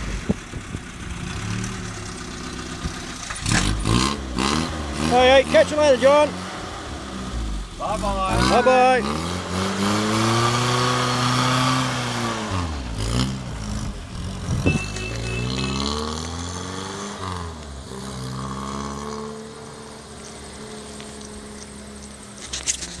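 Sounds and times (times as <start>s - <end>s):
car engine revving through gears: 1.1s - 22.5s.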